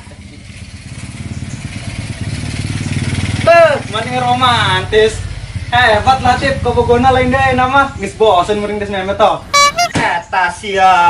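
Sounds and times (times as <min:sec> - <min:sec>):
motorcycle engine approaching: 0:00.2 - 0:08.2.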